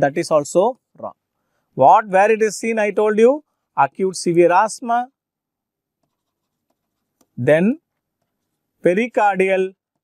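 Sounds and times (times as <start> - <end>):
stylus tapping and scraping tablet: 5.9 - 8.8.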